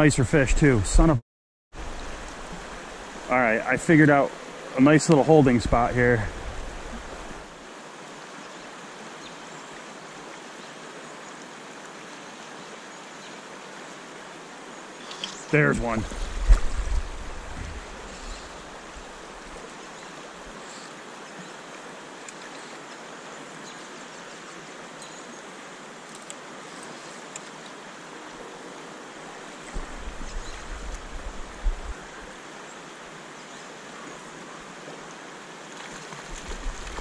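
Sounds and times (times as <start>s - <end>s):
creek water rushing: 1.8s - 37.0s.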